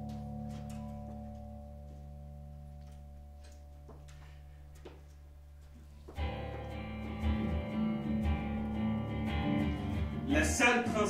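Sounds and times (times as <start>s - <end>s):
electric guitar low drone: 6.2s - 11.0s.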